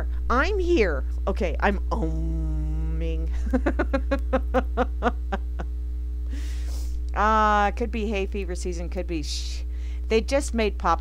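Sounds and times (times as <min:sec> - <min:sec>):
low mains hum: 0:00.0 - 0:11.0
woman laughing quietly: 0:03.3 - 0:05.7.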